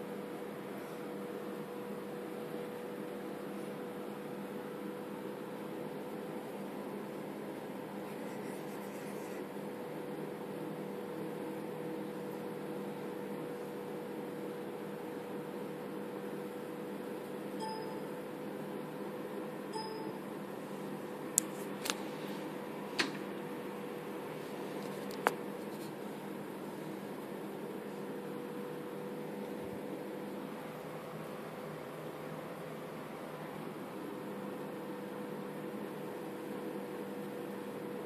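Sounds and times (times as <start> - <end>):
low machine hum: 0.0 - 38.0.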